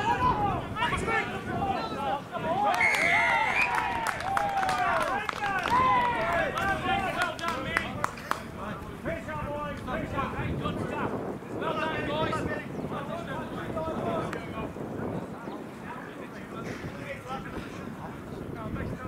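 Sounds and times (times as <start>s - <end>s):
players shouting: 0.0s - 9.8s
referee's whistle: 2.7s - 3.8s.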